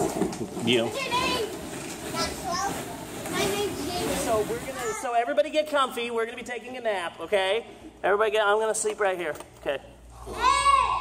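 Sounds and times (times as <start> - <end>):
plastic balls clattering: 0.0 - 5.1
children shouting and squealing: 10.2 - 11.0.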